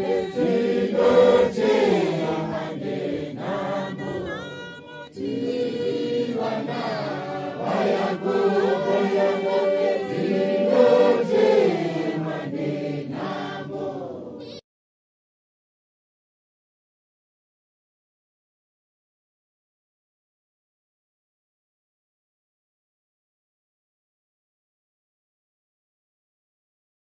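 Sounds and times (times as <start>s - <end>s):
congregation singing a hymn: 0.0s - 14.5s.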